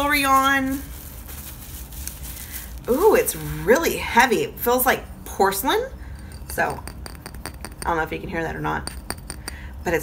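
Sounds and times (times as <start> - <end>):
woman speaking: 0.0 - 0.9, 2.9 - 5.9, 7.8 - 8.9
bubble wrap crinkling: 0.0 - 4.1.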